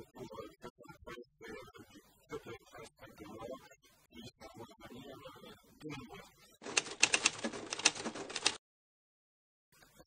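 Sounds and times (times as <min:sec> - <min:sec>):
typewriter keystroke clacks: 0:06.6 - 0:08.6.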